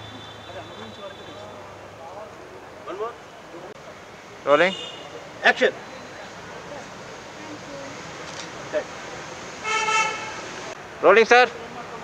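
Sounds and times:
vehicle horn toot: 0.0 - 1.5, 9.6 - 10.4
outdoor background noise: 0.0 - 12.0.

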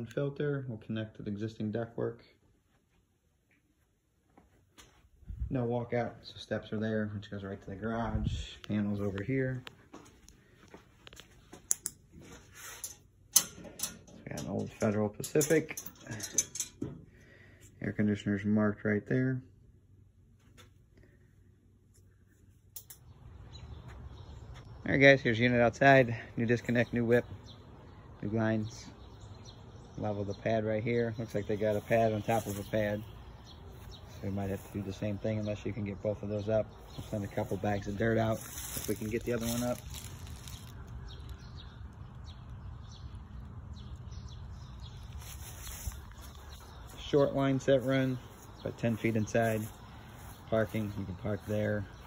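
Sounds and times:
steady low rumble: 5.1 - 9.8
birds chirping: 5.2 - 52.0.

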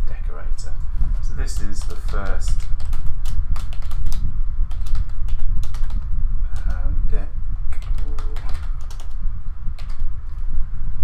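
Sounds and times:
keyboard typing: 1.5 - 6.0, 7.7 - 9.2, 9.8 - 10.0.

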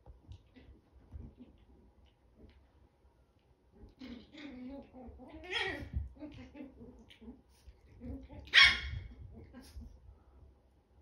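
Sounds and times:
soft low puppy sounds: 0.0 - 10.7
puppy yapping: 8.4 - 9.1.

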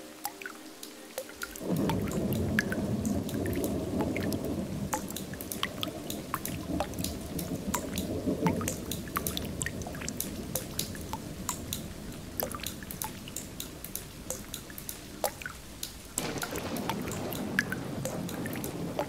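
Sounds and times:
low steady water wash: 0.0 - 19.0
water drops plinking: 0.0 - 19.0.

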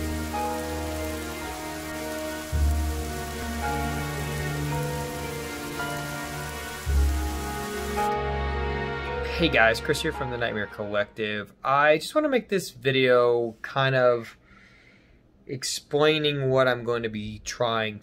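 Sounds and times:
rain: 0.0 - 9.1
dark droning music: 0.0 - 11.0.

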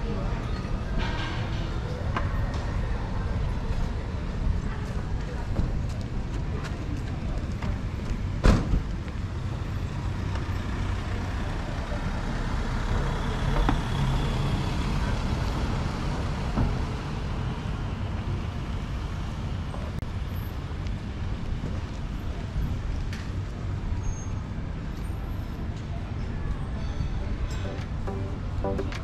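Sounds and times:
traffic rumble: 0.0 - 29.0.

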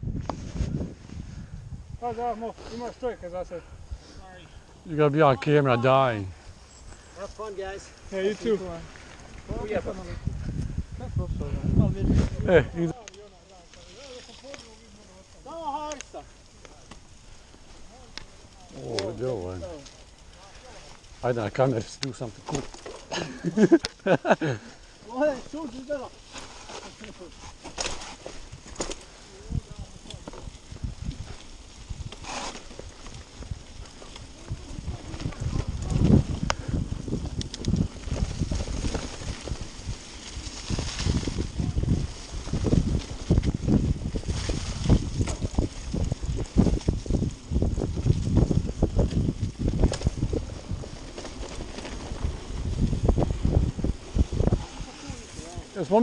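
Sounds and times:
wind noise on microphone: 0.0 - 13.0, 26.4 - 56.0
bike rattling over bumps: 5.2 - 56.0.

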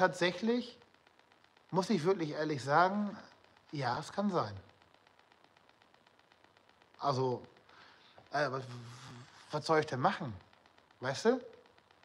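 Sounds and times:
faint fast ticking: 0.0 - 12.0.

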